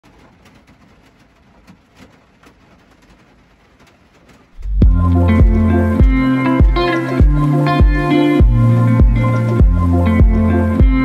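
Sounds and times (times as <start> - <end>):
light rain falling: 0.0 - 11.0
drops ticking: 0.1 - 11.0.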